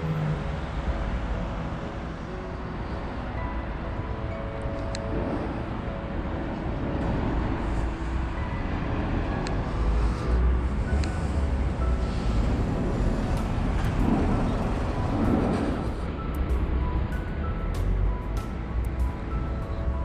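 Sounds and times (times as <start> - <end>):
road traffic rumble: 0.0 - 20.0.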